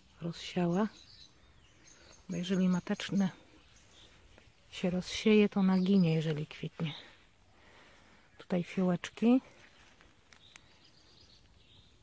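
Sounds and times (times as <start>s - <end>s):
distant bird calling: 0.7s - 8.4s.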